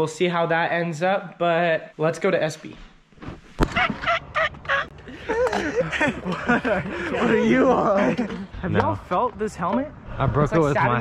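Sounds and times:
person laughing: 0:04.4 - 0:08.6.

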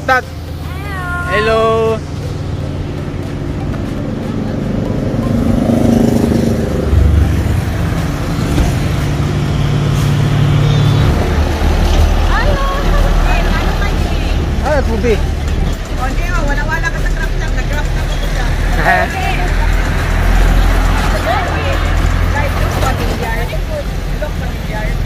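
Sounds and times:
heavy truck engine rumble: 0:00.0 - 0:25.0
motorcycle engine passing: 0:02.2 - 0:14.1.

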